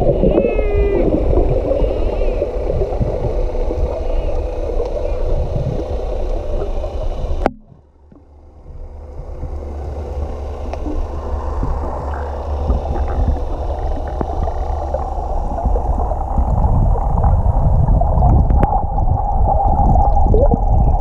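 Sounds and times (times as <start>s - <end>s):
muffled underwater rumble: 0.0s - 21.0s.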